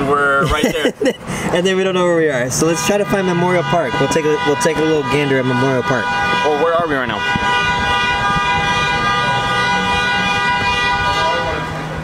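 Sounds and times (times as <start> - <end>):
street traffic noise: 0.0 - 12.0
vehicle horn held: 2.9 - 11.7.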